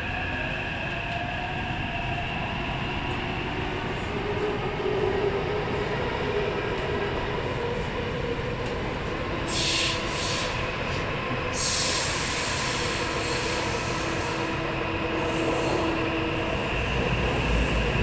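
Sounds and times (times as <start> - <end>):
subway wheels rumbling on track: 0.0 - 18.0.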